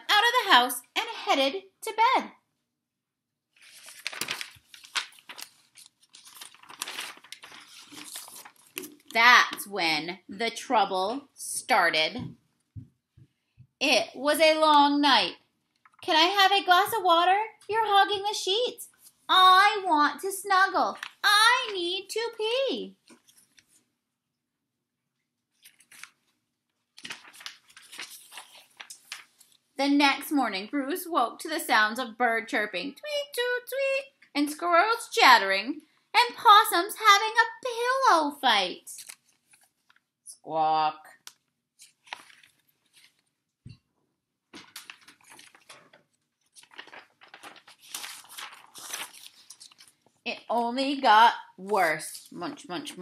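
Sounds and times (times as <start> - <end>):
paper pages turning: 3.5 - 9.7, 15.8 - 16.0, 20.8 - 22.0, 23.0 - 23.9, 25.5 - 29.7, 39.0 - 40.1, 41.2 - 43.9, 44.5 - 50.2.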